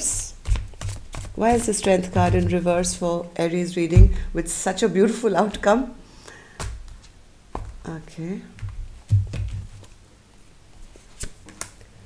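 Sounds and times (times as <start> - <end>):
cards rustling: 0.4 - 3.0.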